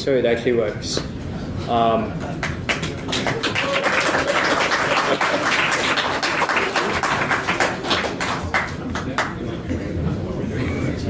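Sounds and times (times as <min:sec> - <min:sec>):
audience applauding: 0:02.4 - 0:09.5.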